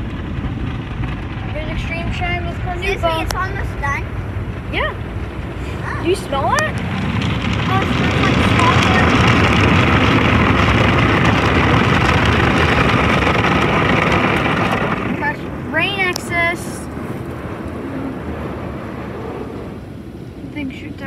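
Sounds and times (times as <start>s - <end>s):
water spray on car: 0.0s - 21.0s.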